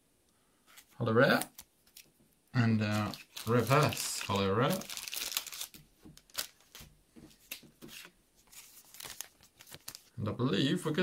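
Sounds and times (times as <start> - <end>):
plastic packaging crinkling: 2.8 - 7.6, 8.5 - 10.2.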